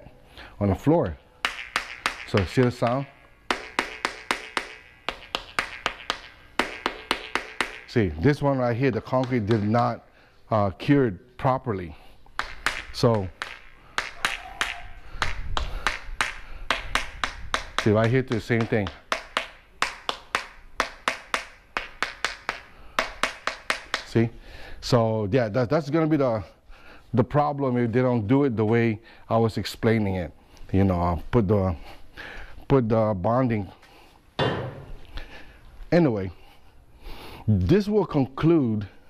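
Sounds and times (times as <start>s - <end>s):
stick tapping on hollow tiles: 0.8s - 10.0s, 12.2s - 24.3s.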